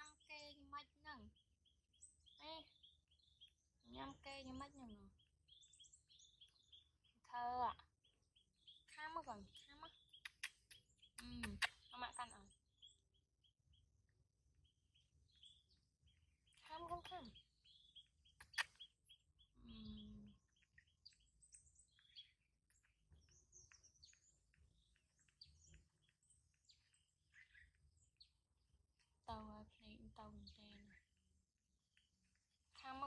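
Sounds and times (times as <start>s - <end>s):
faint bird chirps: 0.0s - 33.0s
sharp click: 10.2s - 11.9s.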